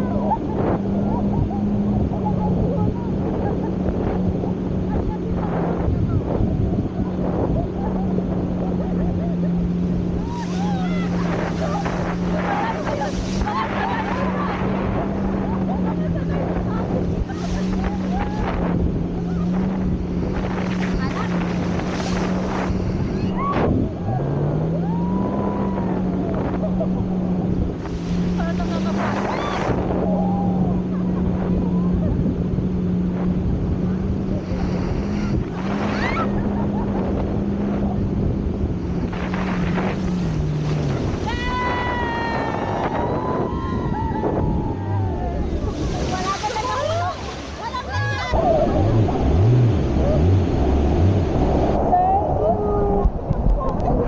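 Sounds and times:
speedboat engine droning: 0.0s - 54.0s
wind on microphone: 0.0s - 54.0s
people laughing and shrieking: 7.4s - 19.6s, 23.2s - 27.5s, 28.5s - 32.2s, 35.7s - 37.2s, 41.2s - 50.3s, 51.8s - 54.0s
rushing water spray: 10.0s - 15.7s, 45.5s - 51.8s.

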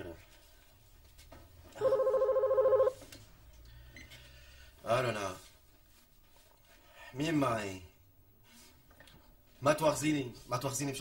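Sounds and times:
telephone ringing: 1.8s - 3.0s.

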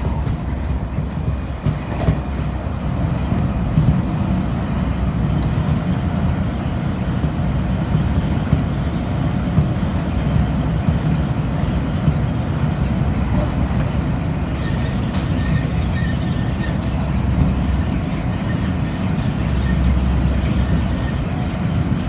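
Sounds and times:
train rumbling on tracks: 0.0s - 22.0s
wheels clicking over rails: 0.0s - 22.0s.

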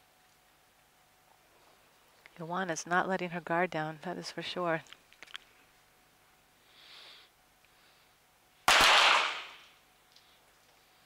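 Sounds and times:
pistol shots with reverberation: 8.7s - 9.6s.

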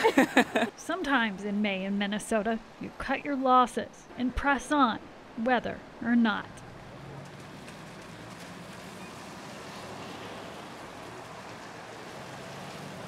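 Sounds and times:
traffic hum with hiss: 0.0s - 13.0s.

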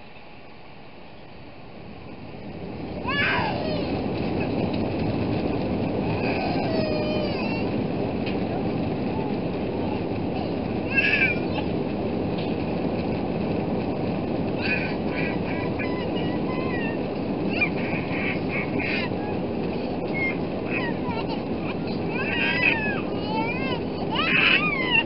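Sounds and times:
jet engines and runway rumble: 0.0s - 25.0s
child crying: 3.0s - 4.0s, 6.1s - 7.8s, 10.3s - 11.7s, 14.6s - 25.0s.

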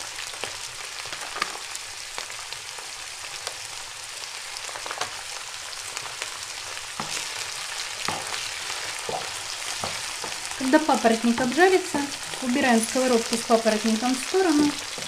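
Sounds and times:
food sizzling in a frying pan: 0.0s - 15.0s
small pops and crackles: 0.4s - 1.7s.

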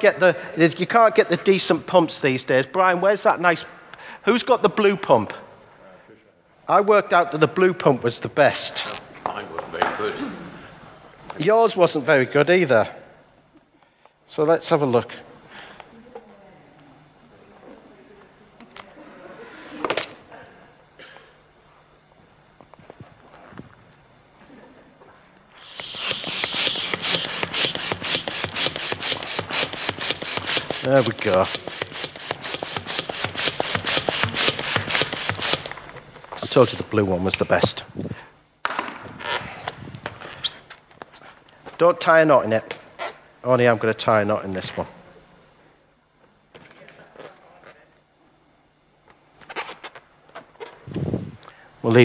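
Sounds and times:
hand balloon pump rasping air: 25.5s - 36.7s.

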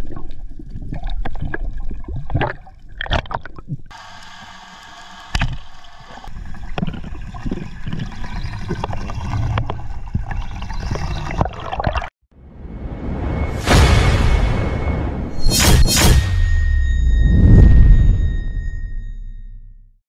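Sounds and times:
bubbles gurgling: 0.0s - 3.9s, 6.1s - 12.1s.

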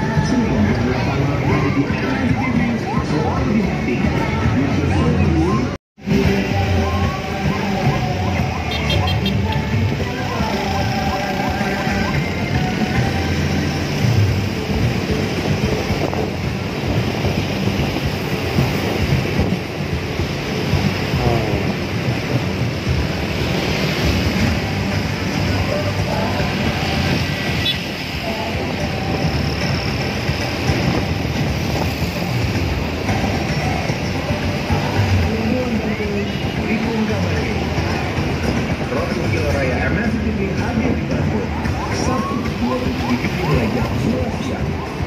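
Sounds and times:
voices: 0.0s - 17.4s, 20.6s - 22.9s, 23.6s - 31.1s, 33.0s - 45.0s
music: 0.0s - 45.0s
road traffic: 0.0s - 45.0s
wind rumbling on microphone: 9.5s - 45.0s.

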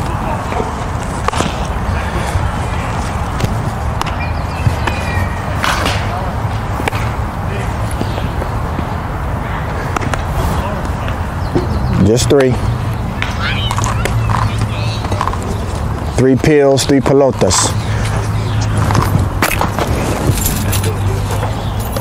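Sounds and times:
faint distant voices: 0.0s - 19.0s, 20.0s - 22.0s.

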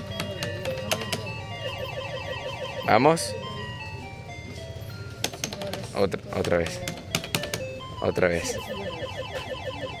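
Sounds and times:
slot machine beeping tones: 0.0s - 5.3s, 6.6s - 10.0s
slot machine rapid ticks: 6.4s - 10.0s.

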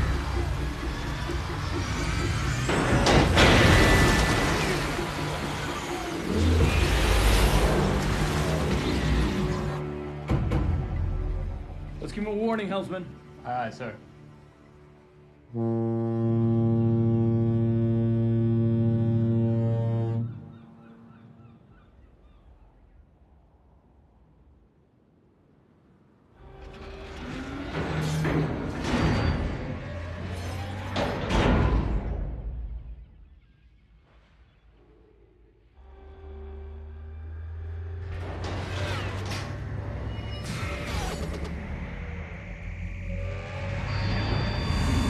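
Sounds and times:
ship horn blast: 15.2s - 21.4s, 35.8s - 38.4s.

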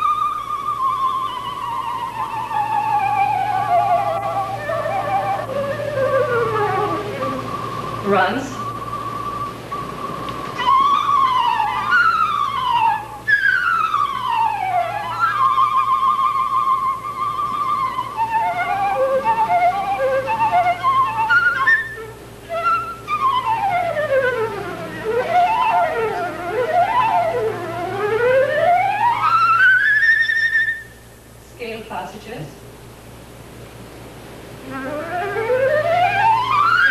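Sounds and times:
solo flute playing fast runs: 0.0s - 31.1s, 34.6s - 36.9s.

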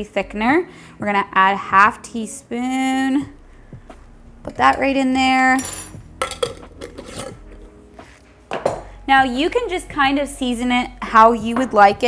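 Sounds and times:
kitchen utensils clinking: 5.6s - 7.4s.

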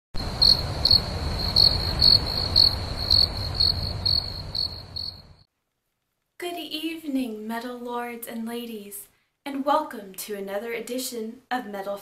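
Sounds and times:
low rumble: 0.2s - 5.4s
crickets chirping: 0.2s - 5.5s.

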